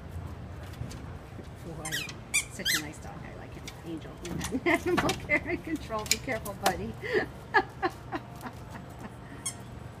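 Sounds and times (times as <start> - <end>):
squeaky toy ball squeaking: 1.8 - 3.0.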